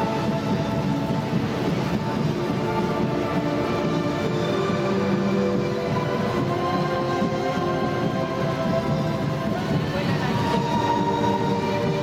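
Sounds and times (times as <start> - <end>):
parade music over loudspeakers: 0.0 - 12.0.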